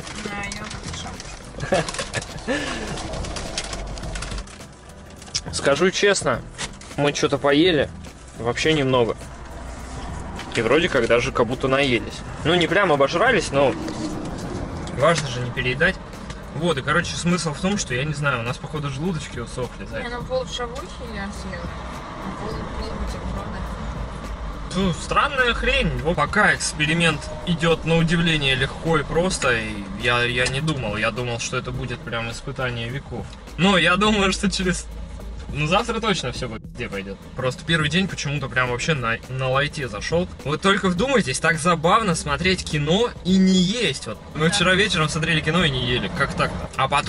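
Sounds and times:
bag and paper wrapper crinkling: 0.0 - 5.4
people talking: 0.1 - 1.2, 10.6 - 13.8, 15.0 - 16.0, 16.6 - 21.7, 22.3 - 23.8, 24.7 - 34.8, 35.5 - 47.0.

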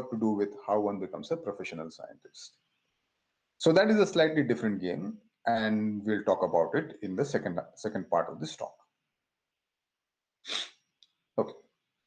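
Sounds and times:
short hissy breath: 10.5 - 10.8.

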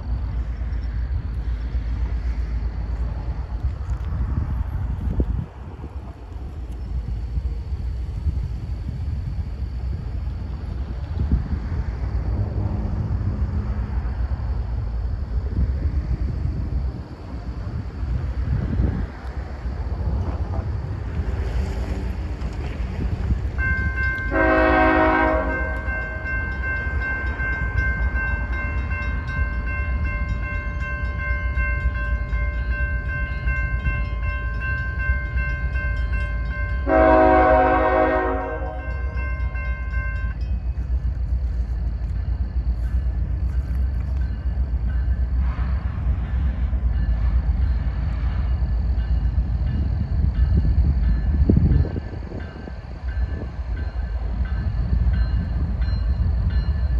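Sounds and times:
train rumble: 0.0 - 56.9
locomotive air horn chord: 24.2 - 26.3, 36.8 - 39.2.

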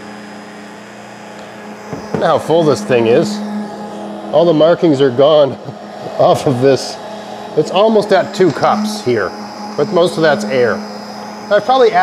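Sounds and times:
hand blender motor running: 0.0 - 12.0.

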